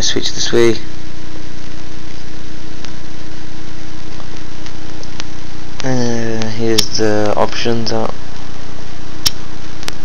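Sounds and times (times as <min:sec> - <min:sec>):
steady loud hiss: 0:00.0 - 0:09.7
low electrical hum: 0:00.0 - 0:10.0.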